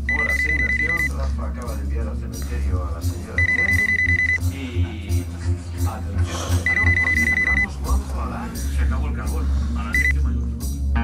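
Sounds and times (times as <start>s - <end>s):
electronic alarm trilling: 0.1s - 1.1s, 3.4s - 4.4s.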